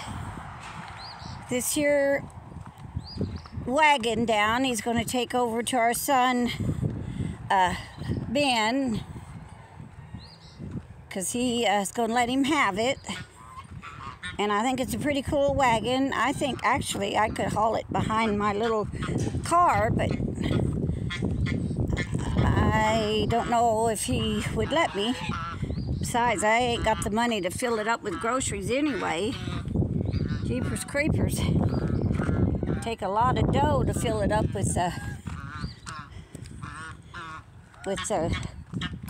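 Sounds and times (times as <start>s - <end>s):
footsteps on gravel: 0.0s - 6.2s, 34.8s - 39.0s
wind rumbling on microphone: 0.0s - 39.0s
goose honking: 12.4s - 15.1s, 15.7s - 33.3s, 33.9s - 39.0s.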